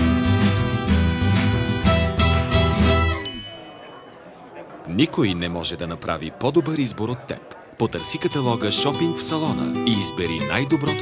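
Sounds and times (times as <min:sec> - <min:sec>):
music: 0:00.0 - 0:03.8, 0:08.0 - 0:11.0
bright high chime: 0:03.2 - 0:04.4.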